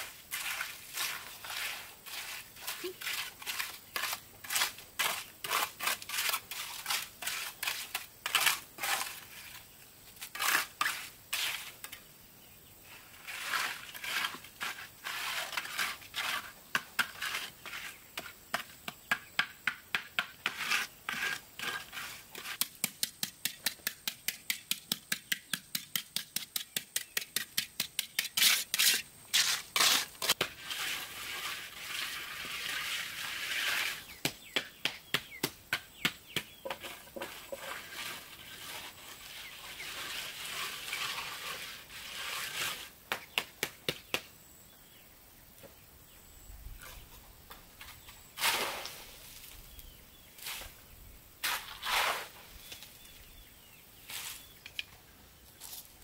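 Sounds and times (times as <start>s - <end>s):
trowel scraping wet concrete: 0.0s - 12.0s, 12.9s - 18.8s, 20.0s - 34.2s, 36.0s - 43.0s, 47.8s - 50.8s, 51.4s - 52.8s.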